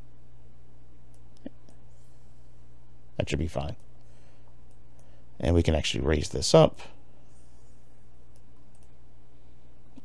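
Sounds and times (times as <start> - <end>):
low background hum: 0.0 - 10.0
computer mouse clicks: 1.1 - 1.8, 8.3 - 9.0.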